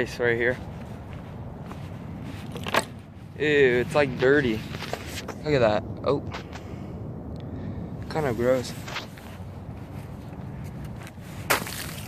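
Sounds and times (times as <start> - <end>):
ice cracking on pavement: 11.4 - 12.0.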